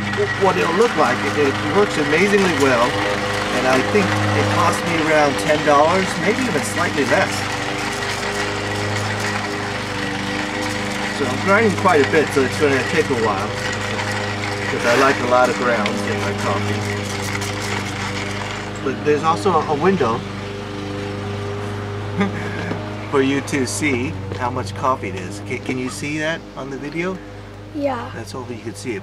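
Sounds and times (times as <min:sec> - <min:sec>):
hand-cranked coffee grinder grinding: 0:00.0 - 0:27.2
lawn mower engines droning: 0:00.0 - 0:29.0.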